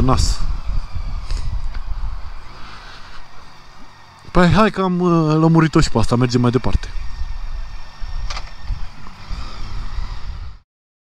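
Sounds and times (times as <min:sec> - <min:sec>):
motorcycle low rumble: 0:00.0 - 0:10.6
wind rushing over microphone: 0:00.0 - 0:10.6.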